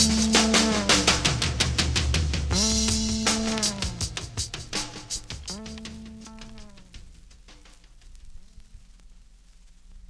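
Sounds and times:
record surface crackle: 0.0s - 10.0s
faint low hum: 2.5s - 10.0s.

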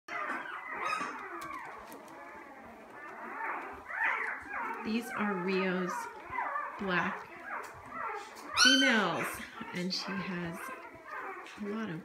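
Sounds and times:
puppies squeaking and whimpering: 0.1s - 12.0s.

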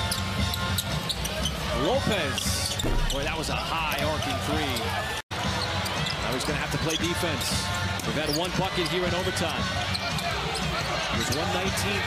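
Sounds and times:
crowd noise: 0.0s - 12.0s
ball on hardwood court: 2.8s - 3.6s.

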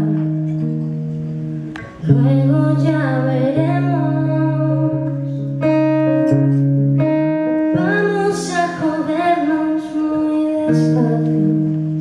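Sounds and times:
woman singing: 0.0s - 0.6s, 2.0s - 5.6s, 7.7s - 12.0s
acoustic guitar chords: 0.0s - 12.0s.

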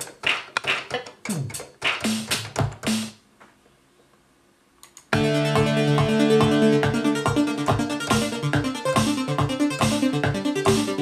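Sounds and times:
electronic dance music: 5.2s - 11.0s.

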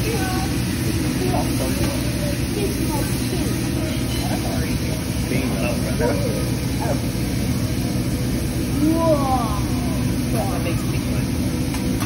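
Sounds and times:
faint voices of diners: 0.0s - 12.0s
food sizzling on hot griddle: 0.0s - 12.0s.

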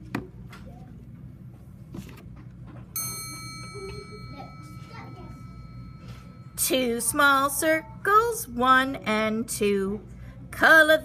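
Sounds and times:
metallic bell-like ding: 3.0s - 6.8s.

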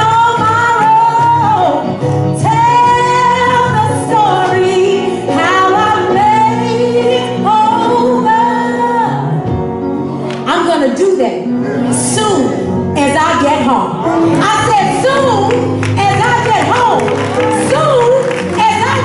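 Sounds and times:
woman singing gospel solo: 0.0s - 9.4s, 14.4s - 19.0s.

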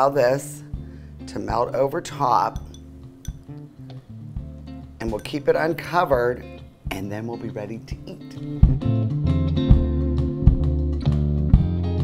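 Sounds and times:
bass line: 8.6s - 12.0s.

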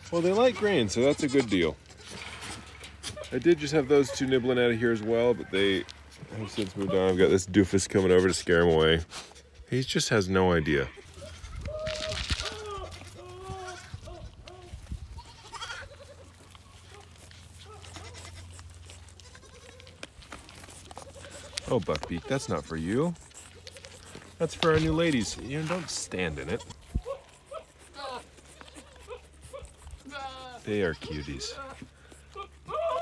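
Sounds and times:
young goats bleating: 0.0s - 2.3s, 3.0s - 7.2s, 10.5s - 33.0s.

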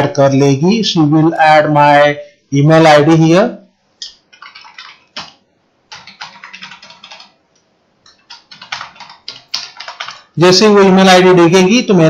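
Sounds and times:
computer keyboard key clicks: 4.3s - 7.3s, 8.1s - 10.3s.

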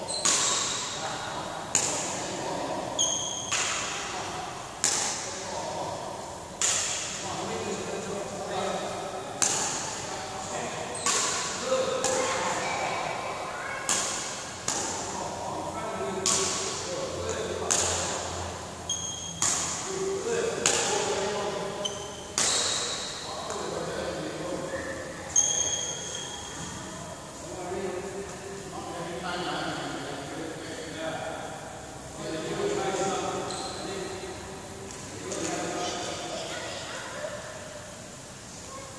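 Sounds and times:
shoes squeaking on court floor: 0.0s - 1.0s, 2.9s - 3.9s, 18.9s - 19.7s, 21.7s - 23.7s, 24.7s - 26.8s, 33.3s - 34.2s
rackets striking shuttlecock: 0.1s - 1.0s, 1.6s - 2.3s, 3.0s - 5.4s, 6.5s - 7.3s, 9.3s - 10.0s, 11.0s - 12.2s, 13.8s - 15.2s, 16.2s - 16.9s, 17.6s - 18.3s, 18.9s - 23.7s.

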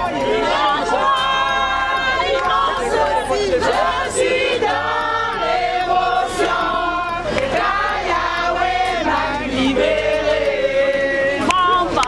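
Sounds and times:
crowd singing in chorus: 0.0s - 12.0s.

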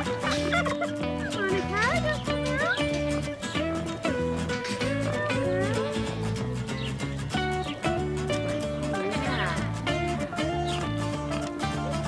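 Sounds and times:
turkeys gobbling: 0.0s - 3.3s
background music with held chords: 0.0s - 12.0s.

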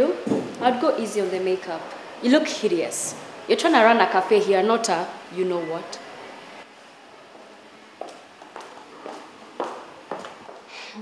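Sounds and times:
footsteps on a hard floor: 7.3s - 10.7s.

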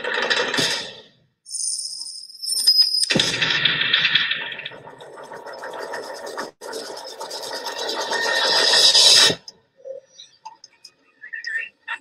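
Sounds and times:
fast-ticking noisy texture: 3.1s - 12.0s.

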